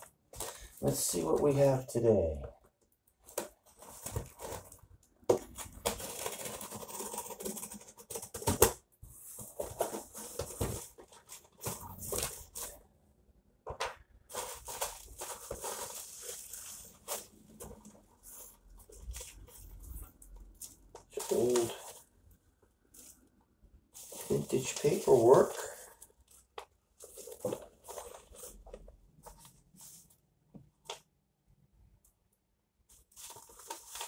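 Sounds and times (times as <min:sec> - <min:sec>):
bubble wrap and paper rustling: 0:03.2 - 0:12.8, 0:14.2 - 0:22.1, 0:22.9 - 0:30.2, 0:32.8 - 0:34.0.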